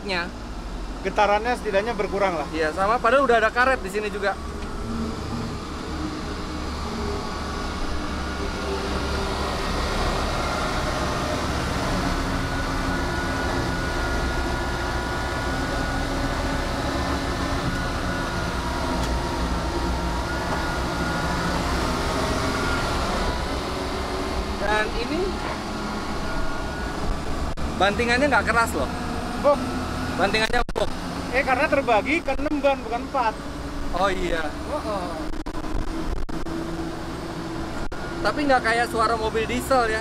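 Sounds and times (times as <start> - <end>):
armoured vehicle rumble: 0.0 - 40.0
high even whine: 0.0 - 40.0.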